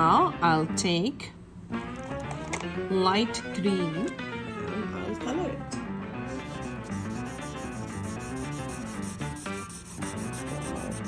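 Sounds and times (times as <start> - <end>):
background music: 0.0 - 11.0
marker scribbling on paper: 6.3 - 11.0.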